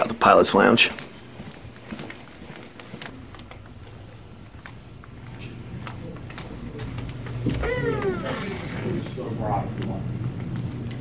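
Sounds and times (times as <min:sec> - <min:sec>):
door hinge squeaking: 0:07.5 - 0:09.0.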